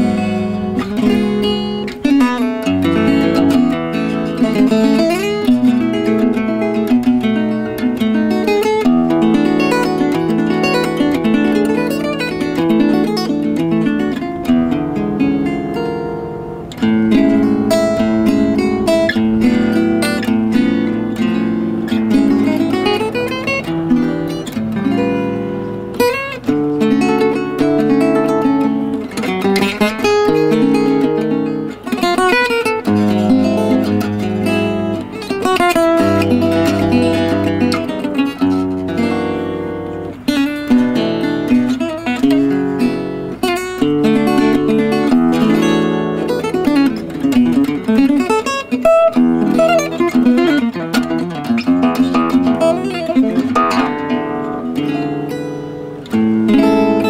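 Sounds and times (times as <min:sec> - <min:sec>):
acoustic guitar played with a pick: 0:00.0 - 0:57.0.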